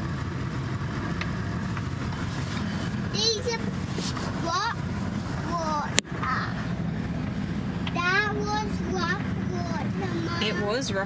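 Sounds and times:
engine and tyres on dirt road: 0.0 - 11.0.

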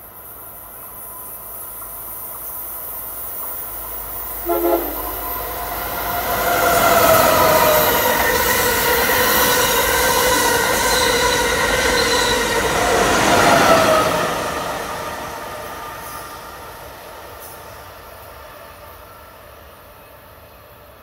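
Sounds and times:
high-speed train passing: 0.0 - 21.0
high whining tones: 4.4 - 7.7.

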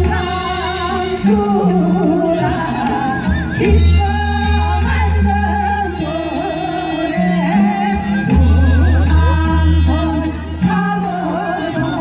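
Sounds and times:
amplified accompaniment with heavy bass: 0.0 - 12.0
woman singing with vibrato: 0.0 - 12.0.

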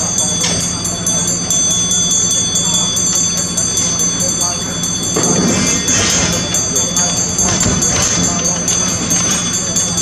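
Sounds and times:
brass handbell ringing rapidly: 0.0 - 10.0.

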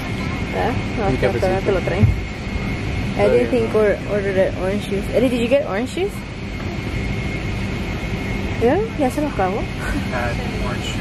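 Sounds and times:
airliner cabin rumble and hiss: 0.0 - 11.0
faint high whine: 0.0 - 11.0.

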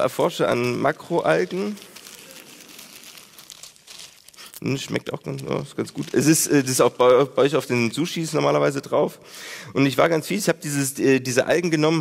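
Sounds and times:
dried seaweed crinkling: 0.0 - 7.0.

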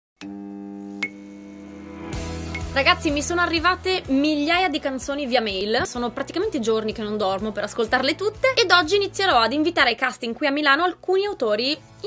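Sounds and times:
steady electronic tone: 0.2 - 3.1.

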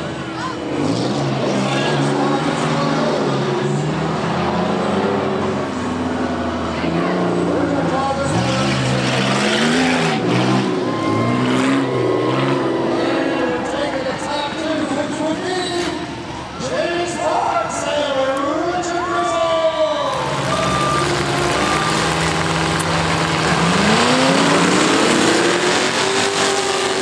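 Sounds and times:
race car engines revving: 0.0 - 27.0.

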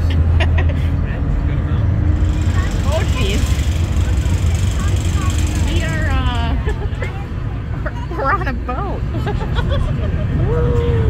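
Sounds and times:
ferry diesel engines rumbling: 0.0 - 11.0.

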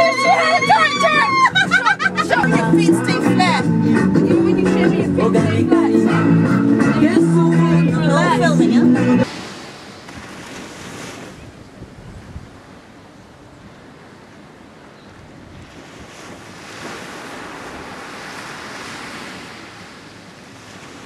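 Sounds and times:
small waves breaking on sand: 9.2 - 21.0
wind on microphone: 10.1 - 13.9, 15.2 - 21.0.

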